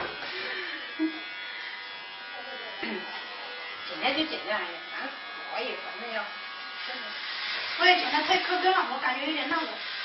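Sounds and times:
electric hair clippers buzzing: 0.0 - 10.0.

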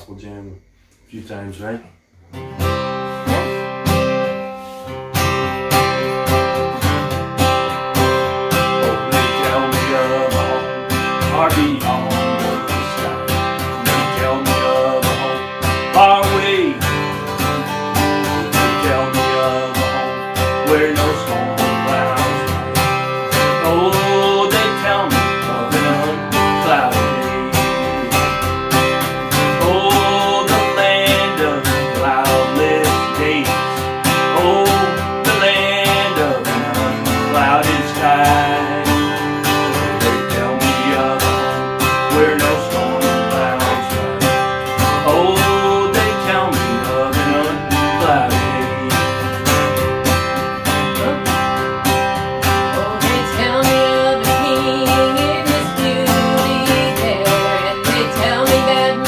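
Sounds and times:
acoustic guitar strumming: 0.1 - 59.0
man singing: 5.6 - 59.0
woman singing: 52.6 - 59.0.

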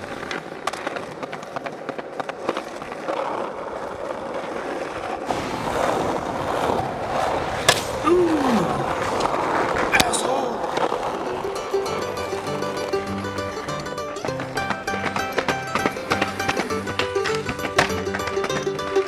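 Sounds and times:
skateboard clicks: 0.0 - 19.0
skateboard cracking: 0.0 - 19.0
skateboard wheels rolling on pavement: 0.0 - 19.0.

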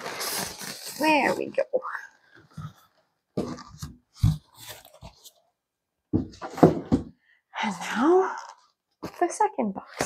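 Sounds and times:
styrofoam scraping and squeaking: 0.0 - 5.4.

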